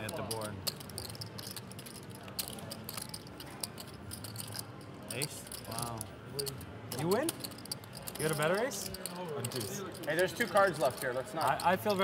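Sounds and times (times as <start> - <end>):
low room murmur: 0.0 - 12.0
poker chips clicking: 0.0 - 12.0.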